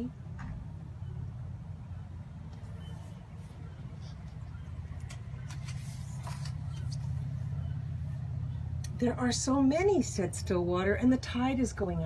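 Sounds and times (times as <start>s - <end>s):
book pages turning: 2.6s - 7.5s
crisp paper rustles: 5.0s - 7.4s.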